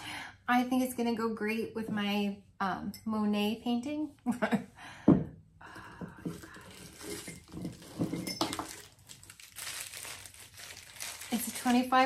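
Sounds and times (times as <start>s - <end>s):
packing wrap crinkling: 6.3s - 12.0s.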